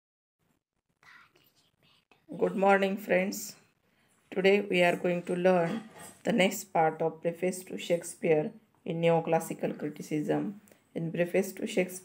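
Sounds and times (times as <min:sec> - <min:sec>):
faint whispering voice: 0:01.0 - 0:02.8.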